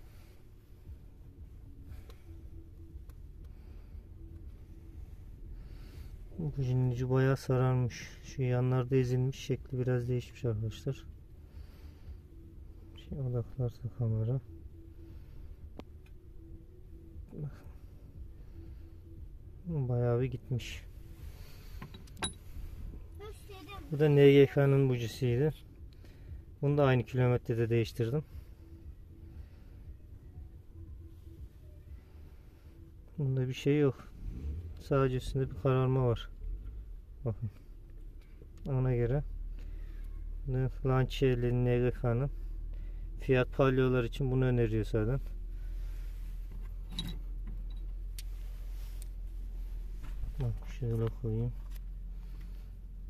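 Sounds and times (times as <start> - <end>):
low steady hum: 0.0 - 53.0
low steady rumble: 0.0 - 53.0.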